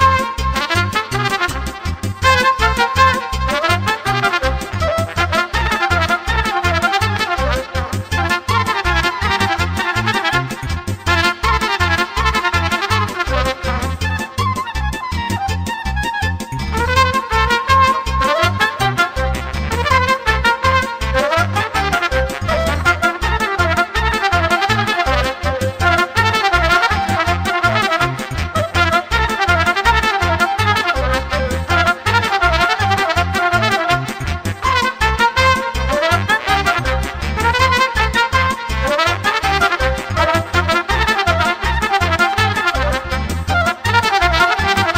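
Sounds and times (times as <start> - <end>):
keyboard accompaniment: 0.0 - 44.9
steady bass beat: 0.0 - 44.9
trumpet playing fast melody: 0.0 - 44.9.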